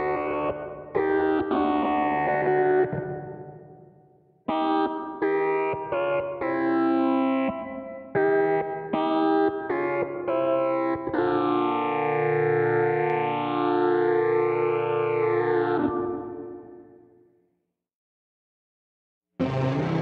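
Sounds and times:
electric guitar with octave effects: 0.0 - 17.0, 19.4 - 20.0.

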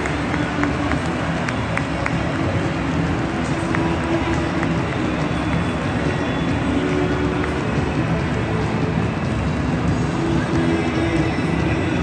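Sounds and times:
crowd voices din: 0.0 - 12.0
scattered claps: 0.0 - 12.0.

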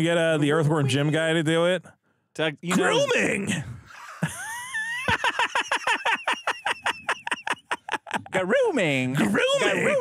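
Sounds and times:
man laughing high-pitched: 3.9 - 8.4.

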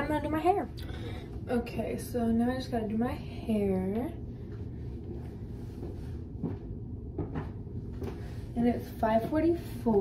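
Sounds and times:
low room noise rumble: 0.0 - 10.0.

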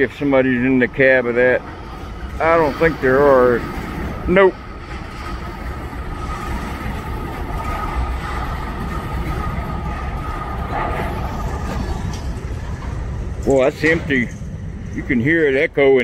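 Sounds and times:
freight train rumbling: 0.0 - 16.0
steady high whine: 0.0 - 16.0.

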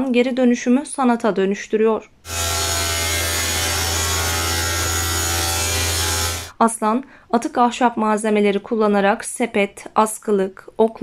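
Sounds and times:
table saw cutting wood: 2.3 - 6.6.

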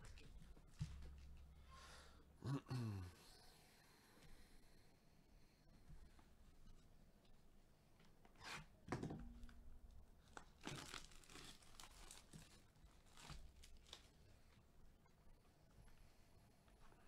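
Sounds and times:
plastic wrapping tearing and crinkling: 10.3 - 14.2.

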